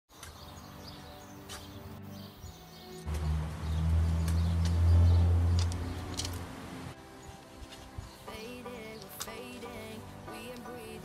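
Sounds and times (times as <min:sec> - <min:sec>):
birds chirping: 0:00.1 - 0:11.0
soft background music: 0:00.1 - 0:11.0.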